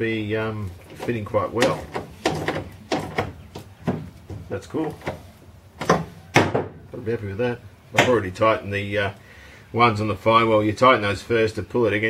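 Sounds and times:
clicks and knocks of parts: 0:00.8 - 0:06.7.

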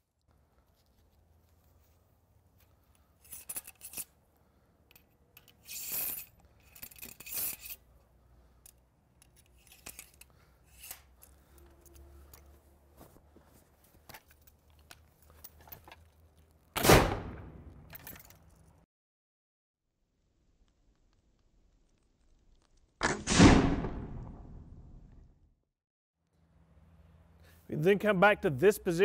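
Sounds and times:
musket gunshot: 0:16.8 - 0:17.7, 0:23.0 - 0:24.7.

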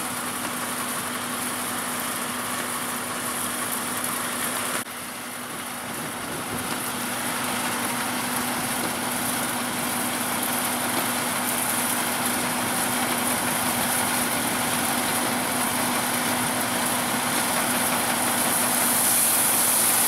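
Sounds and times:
tractor engine running: 0:00.0 - 0:20.0
threshing machinery hiss: 0:18.2 - 0:20.0.

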